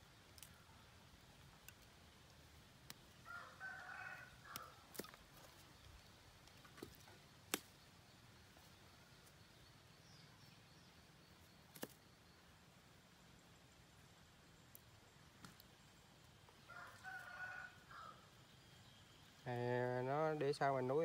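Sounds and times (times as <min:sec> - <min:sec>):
rooster crowing: 0:03.2 - 0:04.8, 0:16.7 - 0:18.3.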